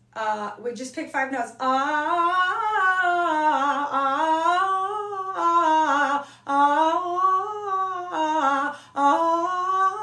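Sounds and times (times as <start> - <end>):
woman singing vocal exercise: 0.0 - 10.0.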